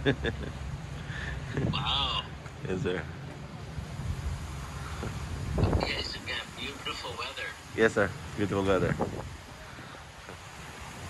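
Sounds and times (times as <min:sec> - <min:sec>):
person laughing: 0:00.0 - 0:00.6, 0:01.4 - 0:02.3
high-pitched vocal exclamation: 0:01.7 - 0:02.4.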